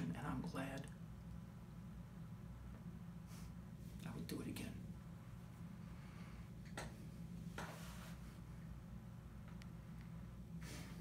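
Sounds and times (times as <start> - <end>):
low room hum: 0.0 - 11.0
soft hiss: 0.0 - 11.0.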